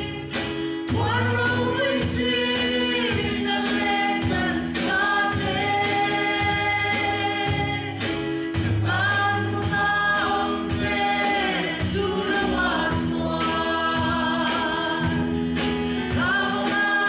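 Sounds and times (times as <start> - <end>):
women singing a slow hymn: 0.0 - 17.0.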